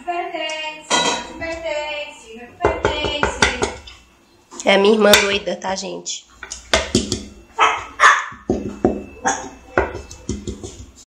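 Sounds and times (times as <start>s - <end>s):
metal cake pan knocking on sink: 2.6s - 3.9s, 6.7s - 10.9s.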